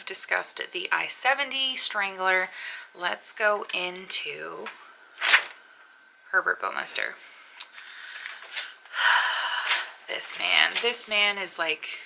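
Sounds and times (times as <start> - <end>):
woman breathing in loudly: 7.7 - 10.0.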